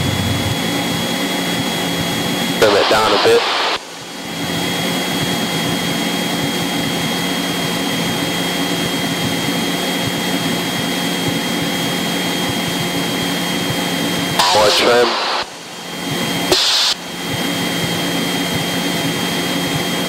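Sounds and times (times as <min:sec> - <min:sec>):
light aircraft engine drone: 0:00.0 - 0:20.0.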